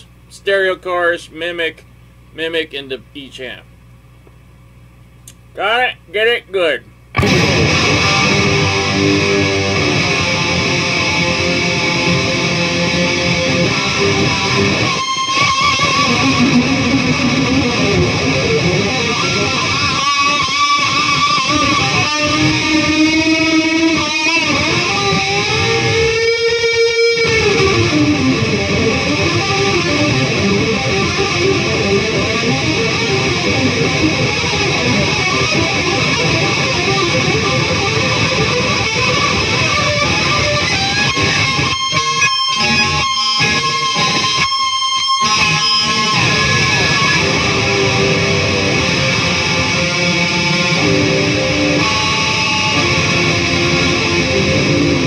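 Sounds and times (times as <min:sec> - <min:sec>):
electric guitar riffs: 0:05.3 - 0:55.0.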